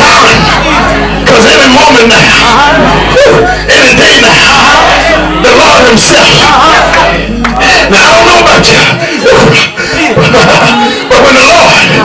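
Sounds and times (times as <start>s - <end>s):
preacher delivering a sermon: 0.0s - 12.0s.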